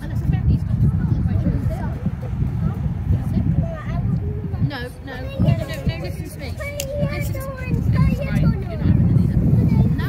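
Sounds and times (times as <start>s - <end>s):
faint voices: 0.0s - 10.0s
wind buffeting microphone: 0.0s - 10.0s.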